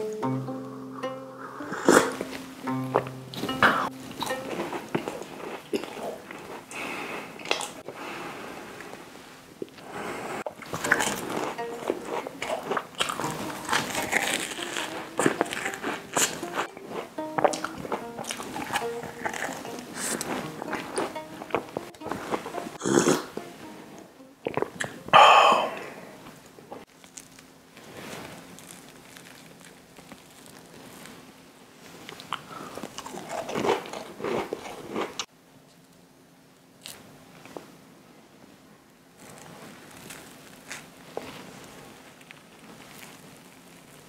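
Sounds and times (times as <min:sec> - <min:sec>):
soft chewing: 0:03.8 - 0:08.0, 0:10.5 - 0:23.5, 0:25.7 - 0:31.2, 0:32.0 - 0:36.0, 0:39.2 - 0:44.0
crunchy biscuit chewing: 0:10.5 - 0:16.9, 0:28.4 - 0:31.0, 0:32.1 - 0:35.3
crunching of crisp biscuit shells: 0:10.6 - 0:16.4, 0:26.9 - 0:31.2, 0:39.2 - 0:44.0.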